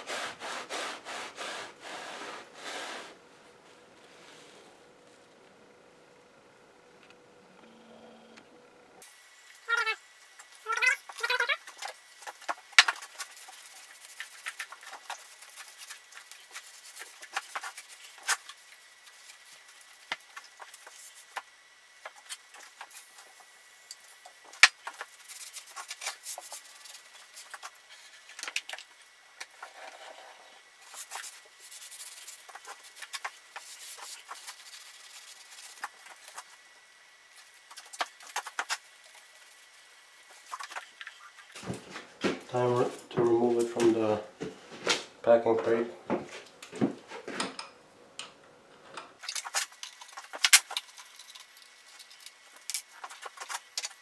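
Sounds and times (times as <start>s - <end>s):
rag wiping metal table: 0.0s - 3.2s.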